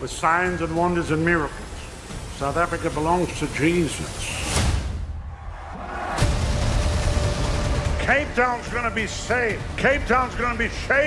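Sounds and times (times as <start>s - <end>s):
voice-over speech: 8.0s - 11.0s.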